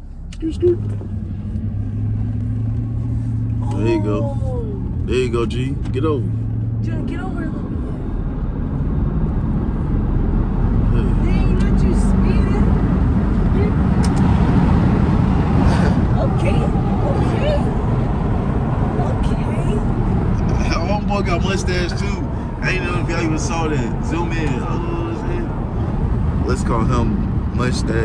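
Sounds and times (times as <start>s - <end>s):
car cabin road and engine noise: 0.0s - 28.0s.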